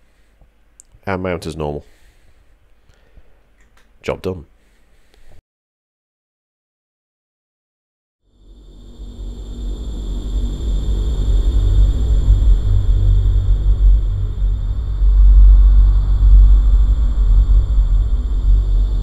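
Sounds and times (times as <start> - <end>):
steady high whine: 8.3 - 19.0
loud low rumble: 8.4 - 19.0.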